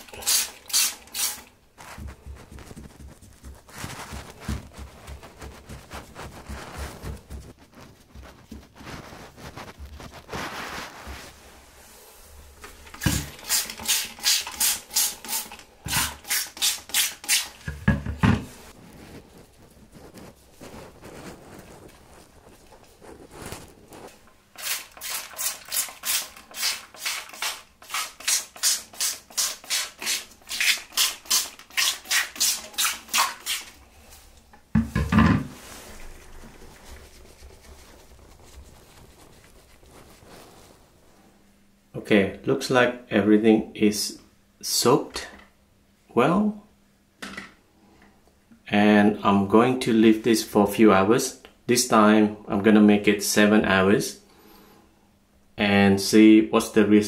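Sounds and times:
spray bottle squirting: 0:00.0 - 0:01.5, 0:12.9 - 0:17.6, 0:24.6 - 0:33.8
wet paper handling: 0:35.6 - 0:40.8.

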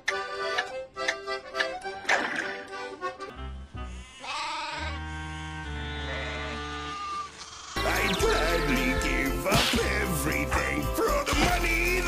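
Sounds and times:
music with sustained low notes: 0:02.8 - 0:04.1
cartoon sheep bleating: 0:03.9 - 0:09.3.

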